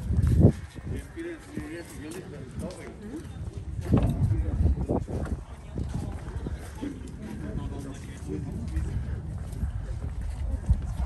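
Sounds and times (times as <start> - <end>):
footsteps on brick paving: 0.0 - 11.0
wind rumble on microphone: 0.0 - 11.0.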